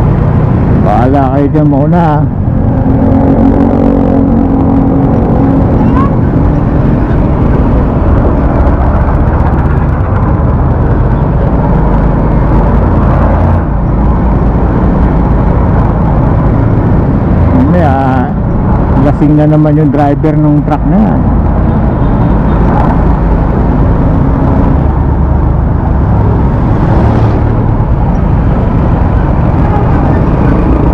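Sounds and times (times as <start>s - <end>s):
motorcycle engine running: 0.0s - 19.0s
road noise: 0.0s - 30.9s
wind rumble on microphone: 0.0s - 30.9s.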